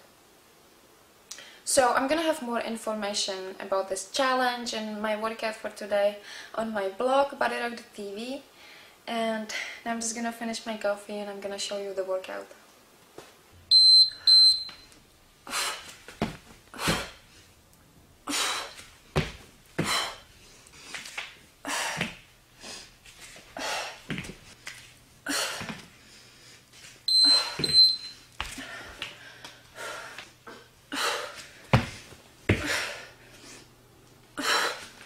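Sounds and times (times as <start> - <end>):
electronic timer beeps: 13.7 - 14.9, 27.1 - 28.2
heavy exercise breathing: 16.7 - 17.6, 18.2 - 18.9, 19.8 - 24.6, 25.2 - 27.6, 28.5 - 33.7.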